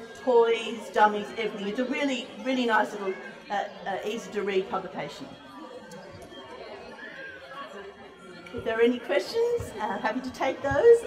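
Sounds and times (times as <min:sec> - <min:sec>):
faint chatter of voices: 0:00.0 - 0:11.0.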